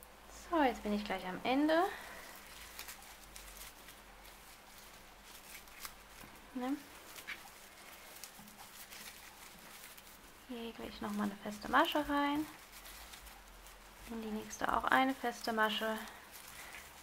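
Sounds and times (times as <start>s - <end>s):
crinkly paper yarn rustling: 0.0s - 17.0s.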